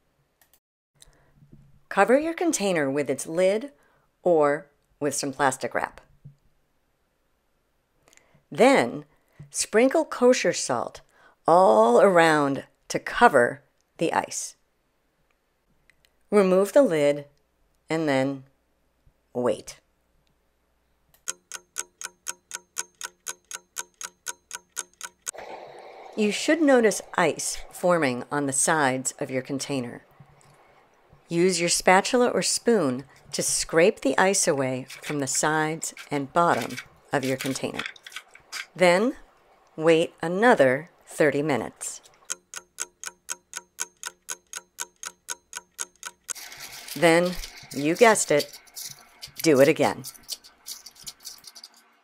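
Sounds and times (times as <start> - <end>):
clock ticking: 21.2 - 25.4, 42.2 - 46.4
steady hiss: 25.4 - 31.4, 46.4 - 49.6.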